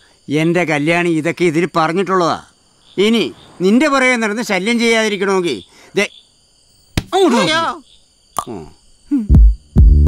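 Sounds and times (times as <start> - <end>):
crickets chirring: 0.0 - 10.0
man speaking: 0.3 - 6.1, 7.1 - 7.8.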